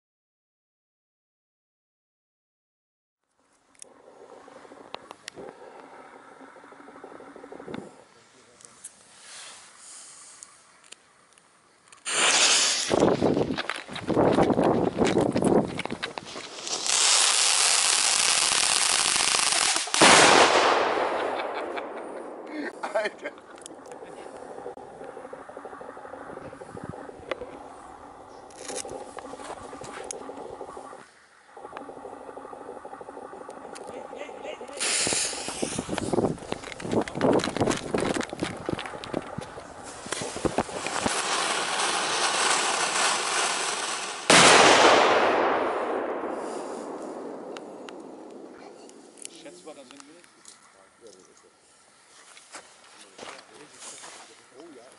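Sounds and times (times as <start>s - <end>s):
firework spraying sparks with hiss: 12.0s - 14.2s, 16.2s - 20.4s, 34.7s - 44.4s
loud firework bang: 12.1s - 13.2s, 19.7s - 22.7s, 44.0s - 49.1s.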